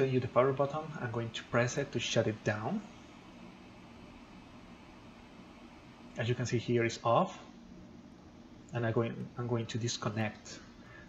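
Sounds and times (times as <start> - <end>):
laptop cooling fan whirring: 0.0 - 11.0.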